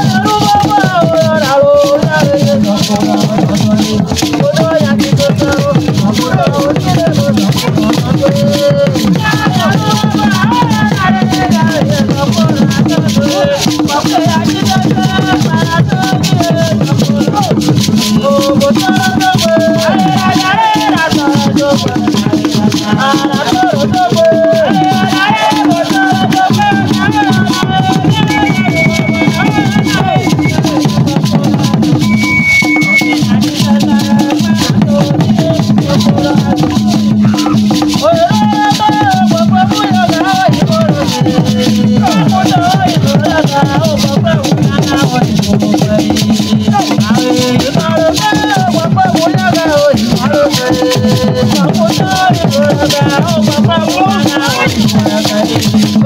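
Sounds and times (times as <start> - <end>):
drumming: 0.0 - 56.0
group singing: 0.0 - 56.0
shaken rattles: 0.0 - 56.0.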